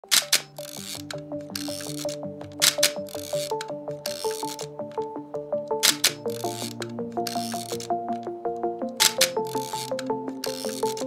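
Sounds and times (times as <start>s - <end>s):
background music: 0.0s - 11.0s
camera shutter clicks: 0.1s - 3.5s, 5.8s - 7.9s, 9.0s - 11.0s.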